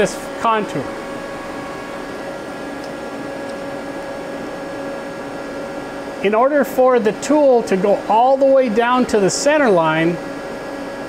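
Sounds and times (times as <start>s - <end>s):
cooling fans humming: 0.0s - 11.0s.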